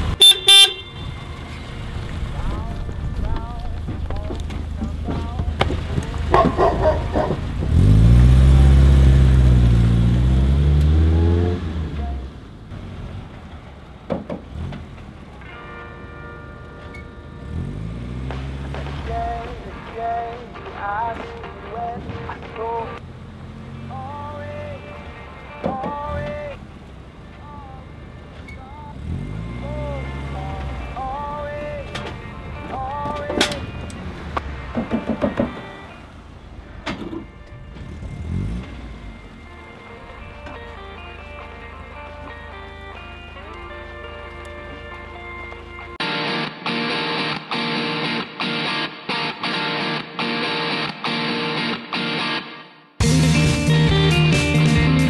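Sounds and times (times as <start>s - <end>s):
electric guitar chords: 15.4s - 23.0s, 28.7s - 55.0s.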